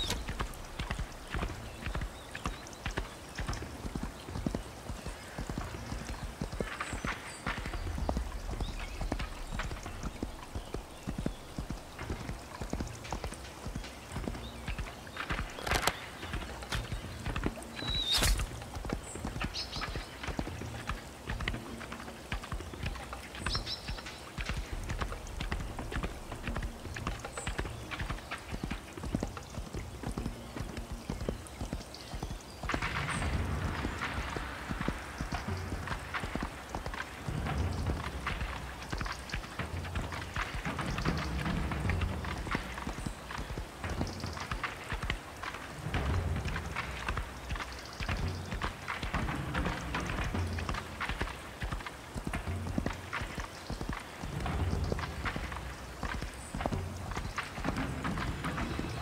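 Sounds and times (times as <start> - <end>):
horse hooves beating on ground: 0.0 - 59.0.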